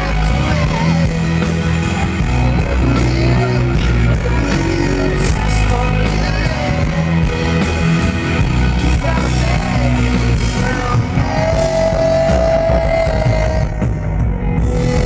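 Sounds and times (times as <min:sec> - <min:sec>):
acoustic guitar: 0:00.0 - 0:15.0
drum kit with cymbals: 0:00.0 - 0:15.0
live rock band: 0:00.0 - 0:15.0
man singing: 0:00.0 - 0:15.0.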